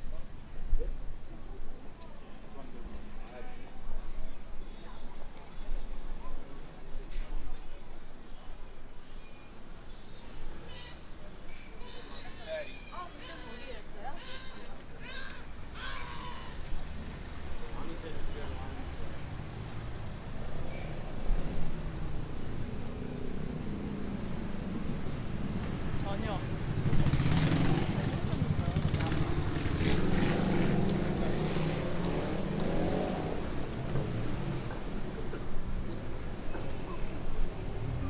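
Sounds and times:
road traffic rumble: 0:00.0 - 0:38.0
passers-by talking: 0:10.2 - 0:23.0, 0:25.5 - 0:38.0.

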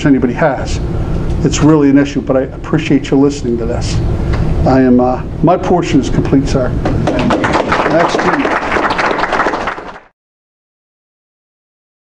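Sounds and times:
audience applauding: 0:07.0 - 0:10.1.

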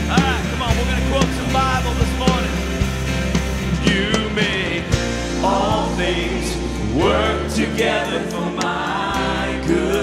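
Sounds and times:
low bass notes: 0:00.0 - 0:10.0
women singing worship song: 0:03.9 - 0:10.0.

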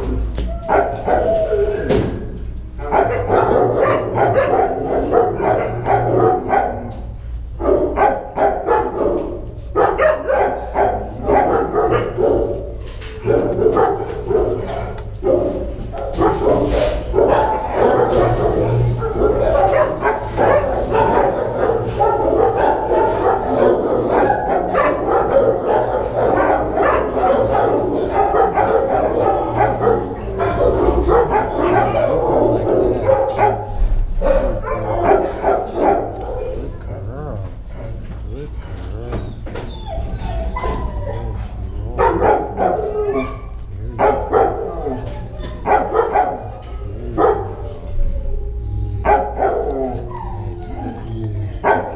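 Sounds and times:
dogs barking: 0:00.0 - 0:51.9
low steady hum: 0:30.2 - 0:39.3.

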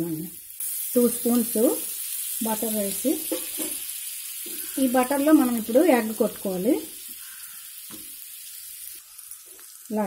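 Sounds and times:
butter sizzling in a frying pan: 0:00.0 - 0:10.0.

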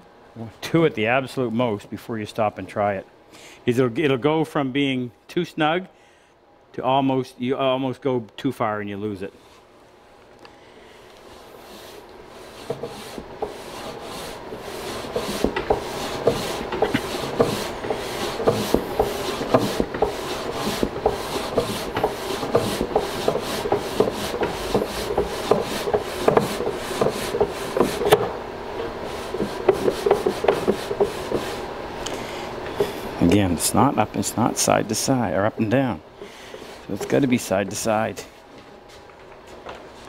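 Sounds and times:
wooden drawer rubbing and knocking: 0:12.4 - 0:31.7, 0:36.5 - 0:37.9.

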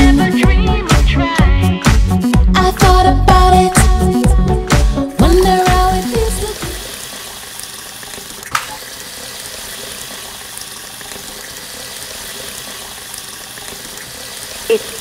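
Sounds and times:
song music: 0:00.0 - 0:06.9
water running from outdoor tap: 0:05.1 - 0:15.0.

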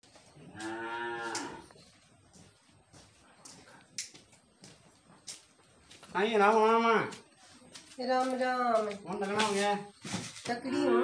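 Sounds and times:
cattle mooing: 0:00.6 - 0:01.7, 0:10.7 - 0:11.0.

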